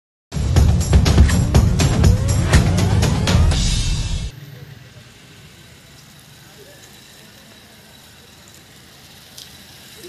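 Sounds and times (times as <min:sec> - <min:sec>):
loud music jingle: 0:00.3 - 0:04.3
street ambience: 0:00.4 - 0:10.0
distant voices: 0:01.8 - 0:10.0.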